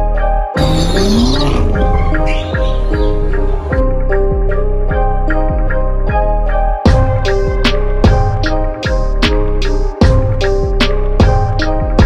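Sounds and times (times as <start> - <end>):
loud background music: 0.0 - 12.0
car engine revving: 0.6 - 3.7.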